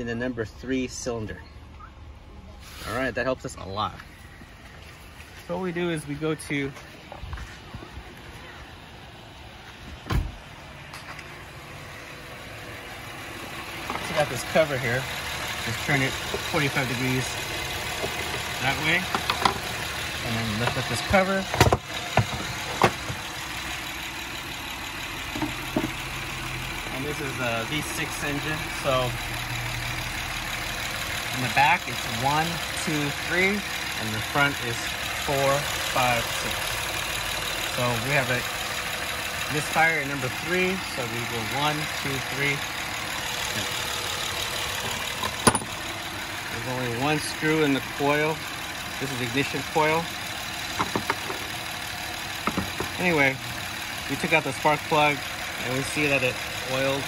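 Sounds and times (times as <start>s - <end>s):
car engine idling: 0.0s - 57.0s
plastic engine cover handled: 50.8s - 51.5s, 52.4s - 53.0s.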